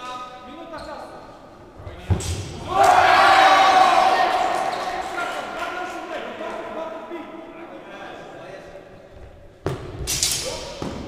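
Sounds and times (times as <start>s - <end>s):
loud drawn-out shout: 2.6s - 6.0s.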